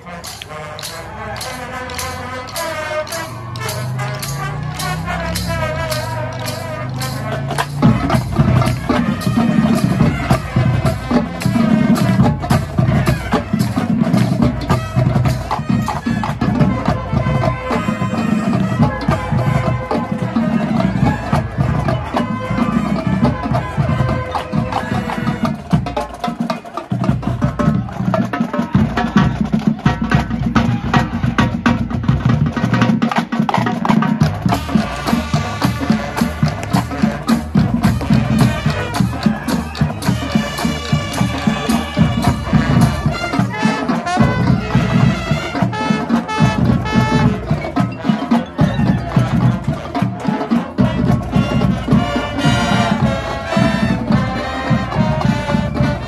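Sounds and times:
brass notes: 0:00.0 - 0:56.0
drumline: 0:00.0 - 0:56.0
mallet percussion: 0:33.0 - 0:56.0.

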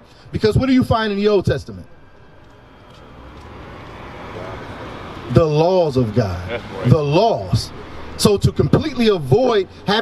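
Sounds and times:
car approaching: 0:00.0 - 0:10.0.

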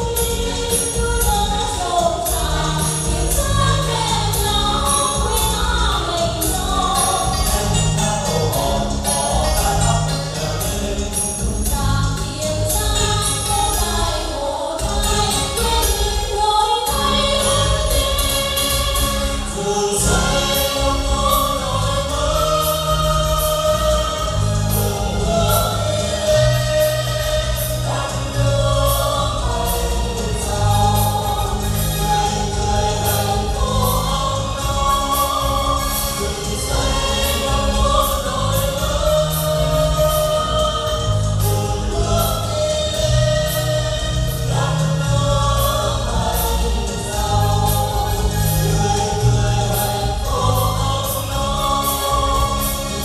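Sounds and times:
amplified accompaniment with bass: 0:00.0 - 0:53.0
mixed chorus singing: 0:00.0 - 0:53.0.

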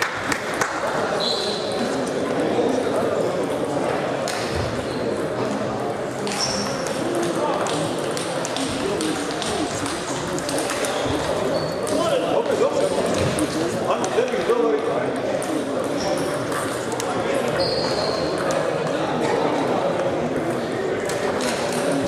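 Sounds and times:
murmur of voices: 0:00.0 - 0:22.0
table tennis balls clicking: 0:06.3 - 0:12.1.

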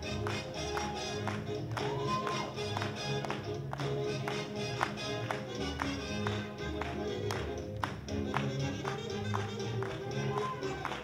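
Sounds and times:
swing jazz music: 0:00.0 - 0:11.0.

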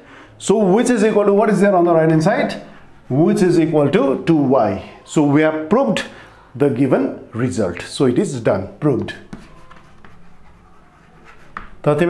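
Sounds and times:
chalk writing on chalkboard: 0:01.7 - 0:04.0, 0:09.0 - 0:12.0.

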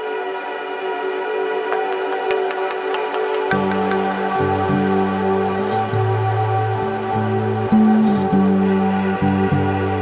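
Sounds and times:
ambient music held chord: 0:00.0 - 0:10.0.

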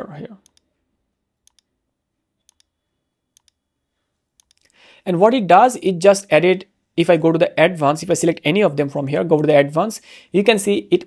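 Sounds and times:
computer mouse clicks: 0:00.4 - 0:00.7, 0:01.4 - 0:01.7, 0:02.4 - 0:02.7, 0:03.3 - 0:03.6, 0:04.4 - 0:04.8.

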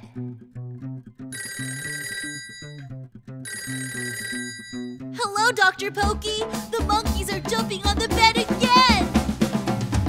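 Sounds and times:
telephone ringing: 0:01.4 - 0:02.9, 0:03.5 - 0:05.1
bouncy children's song music: 0:05.1 - 0:09.2.

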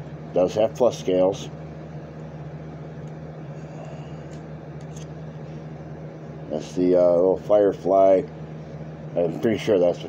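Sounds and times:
electrical appliance hum: 0:00.0 - 0:10.0.

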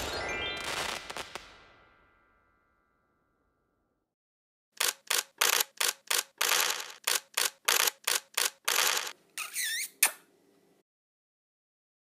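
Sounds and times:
sharp noise bursts: 0:04.8 - 0:09.1.

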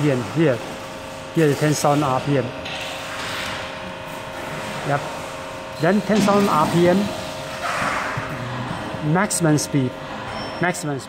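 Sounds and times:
spindle motor whine: 0:01.2 - 0:11.0.

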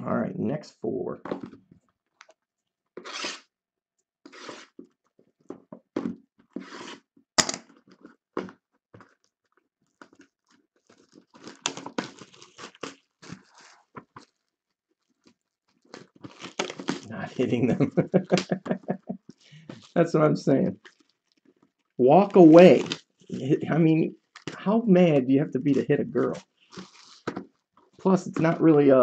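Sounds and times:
rustling: 0:25.7 - 0:28.9.

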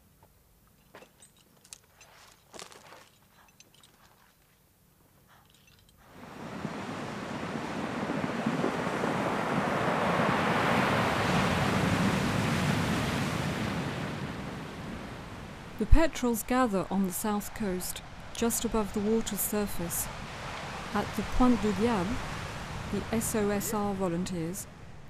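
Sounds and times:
ocean surf rushing: 0:06.0 - 0:25.0.

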